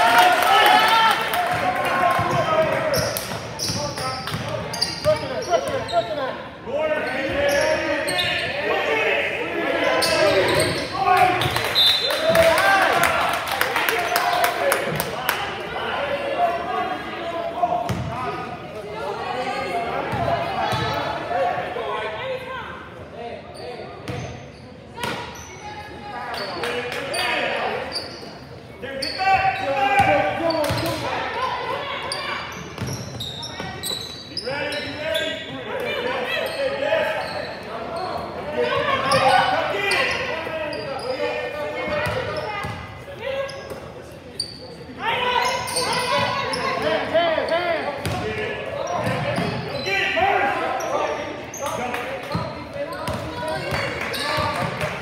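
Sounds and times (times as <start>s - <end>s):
voices calling and shouting: 0.0s - 55.0s.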